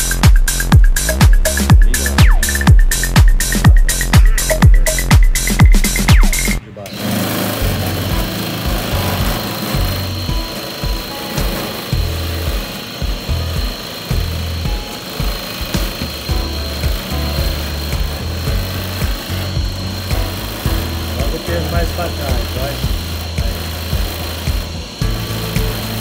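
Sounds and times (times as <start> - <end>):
dance music: 0.0 - 6.6, 7.6 - 26.0
vibration platform whine and buzz: 0.0 - 26.0.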